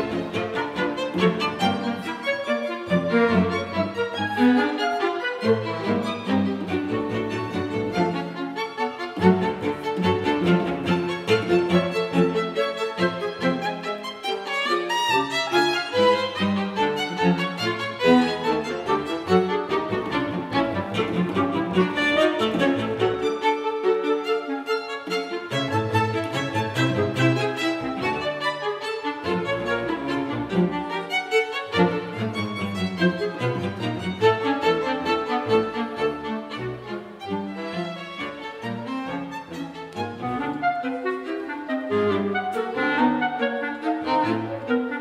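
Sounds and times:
bowed violins: 0.0s - 45.0s
clarinet: 0.0s - 45.0s
low cello and double bass notes: 0.0s - 45.0s
string ensemble: 0.0s - 45.0s.

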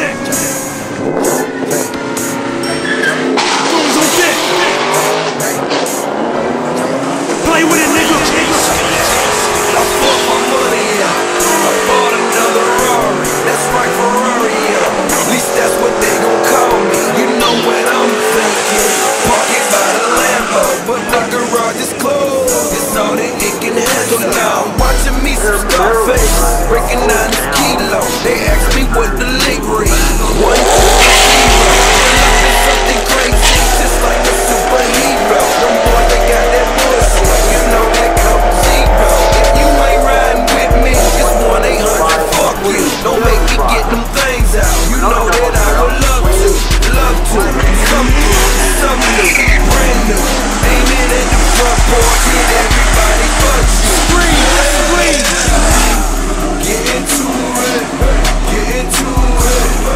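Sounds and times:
car engine revving: 0.0s - 59.9s
music: 0.0s - 59.9s
tires squealing: 0.0s - 59.9s.

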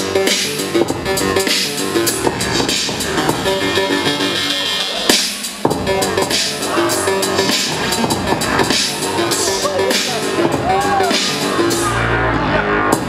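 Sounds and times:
hip-hop music: 0.0s - 13.0s.

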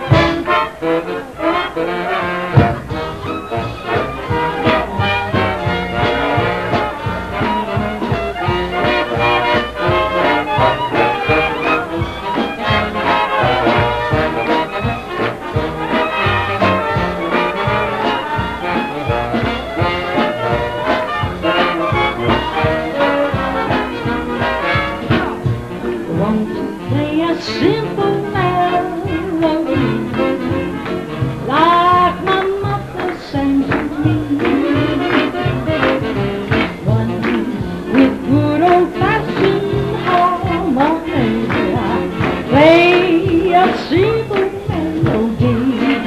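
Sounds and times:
big band playing swing: 0.0s - 46.0s.

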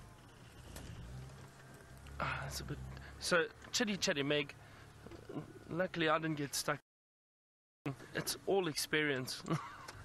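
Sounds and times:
vehicle engine idling: 0.0s - 5.8s.

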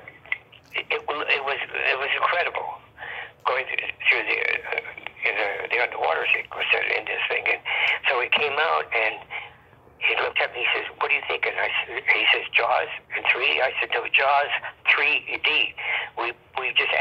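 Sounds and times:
person talking over telephone: 0.0s - 17.0s.

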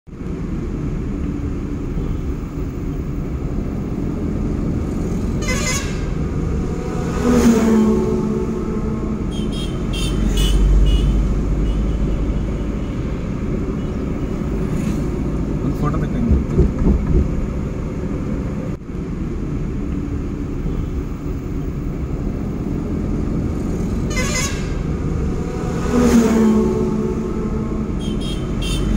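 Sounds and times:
engine and road rumble: 0.0s - 28.9s
vehicle horn: 5.4s - 13.2s, 24.0s - 28.9s.

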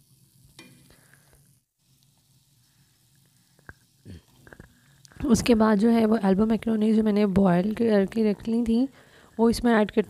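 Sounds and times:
vegetables sizzling in a pan: 0.0s - 10.0s.

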